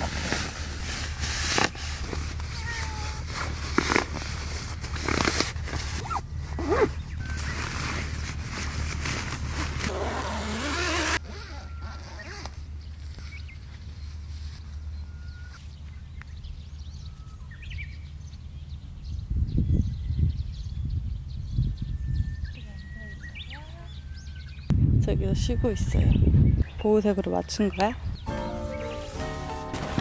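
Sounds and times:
nylon fabric rustling and crinkling: 0:00.0 - 0:14.6.

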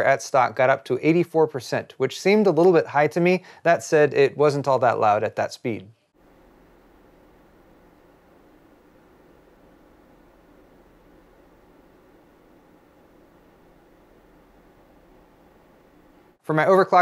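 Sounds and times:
computer fans whooshing: 0:06.2 - 0:16.4.

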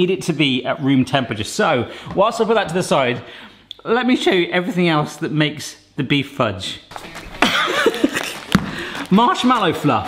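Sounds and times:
food packets crinkling: 0:06.9 - 0:09.8
man chuckling: 0:07.4 - 0:09.0.

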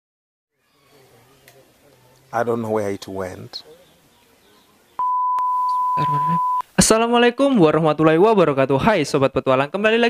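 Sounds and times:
steady test tone beep: 0:05.0 - 0:06.6.

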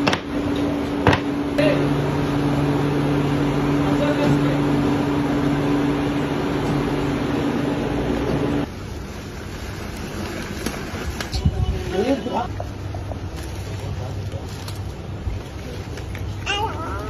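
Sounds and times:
factory machinery humming: 0:00.0 - 0:17.0.

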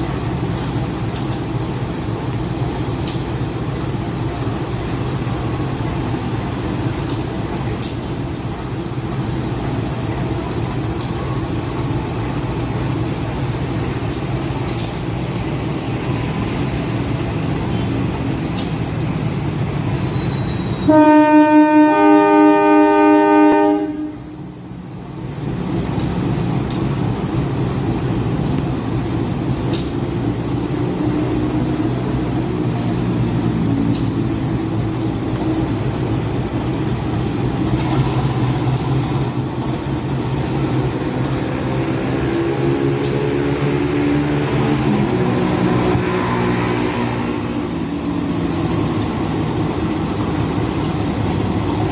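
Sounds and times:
diesel engine running: 0:00.0 - 0:51.9
locomotive horn chord: 0:20.8 - 0:24.4.

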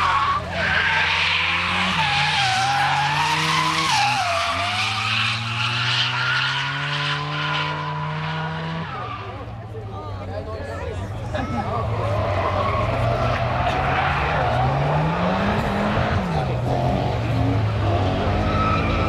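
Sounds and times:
car engine at high revs: 0:00.0 - 0:09.6, 0:11.9 - 0:19.0.

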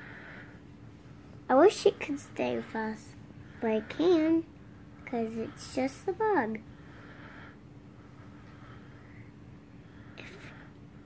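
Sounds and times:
soft whisper: 0:10.0 - 0:10.8.

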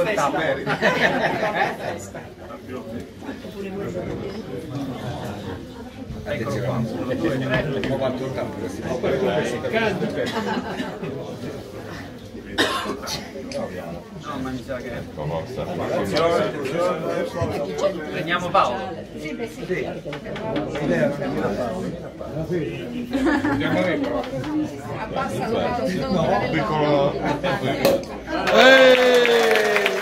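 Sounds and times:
people chattering: 0:00.0 - 0:30.0
people talking: 0:00.0 - 0:30.0
person coughing: 0:12.6 - 0:13.4.

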